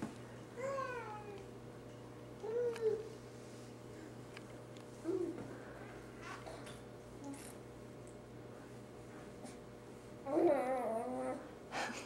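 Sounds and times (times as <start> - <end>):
baby whining: 0.6 - 1.5, 10.2 - 11.5.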